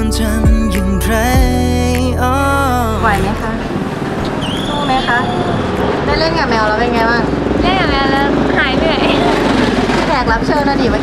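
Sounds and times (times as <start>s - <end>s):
low rumble of traffic: 1.0s - 11.0s
woman talking: 4.6s - 11.0s.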